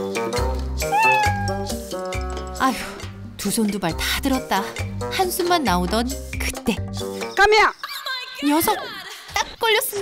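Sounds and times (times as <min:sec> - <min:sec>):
background music: 0:00.0 - 0:10.0
cat meowing: 0:00.8 - 0:01.8.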